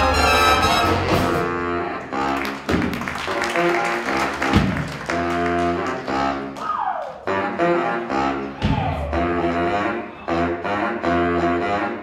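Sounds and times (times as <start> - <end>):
jazz big band playing: 0.0 - 6.6, 7.2 - 12.0.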